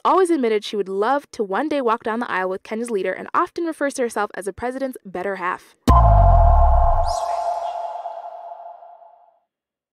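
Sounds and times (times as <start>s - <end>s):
high swish: 5.9s - 9.1s
synthesized hit with bass boom: 5.9s - 9.1s
ringing tone: 5.9s - 9.2s.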